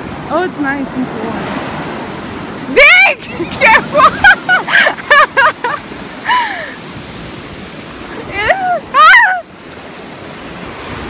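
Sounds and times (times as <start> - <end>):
ocean surf washing up: 0.0 - 11.0
falling voice-like cry: 8.5 - 9.5.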